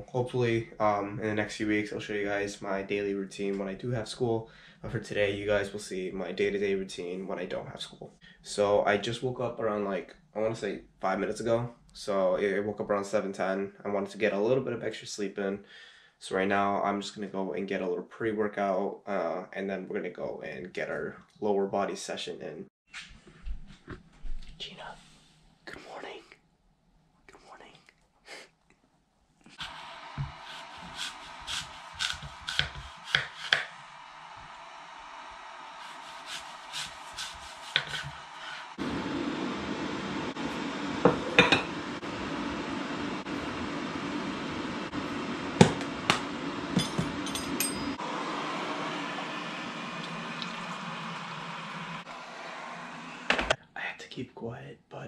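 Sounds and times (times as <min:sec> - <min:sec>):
electric kettle hissing: 0:29.6 - 0:53.6
spoon and cups clinking: 0:46.8 - 0:48.0.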